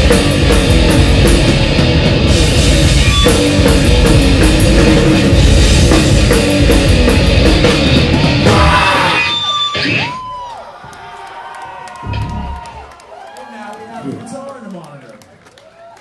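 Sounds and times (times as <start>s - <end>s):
heavy metal band playing: 0.0s - 10.2s
crowd cheering and yelling: 7.9s - 16.0s.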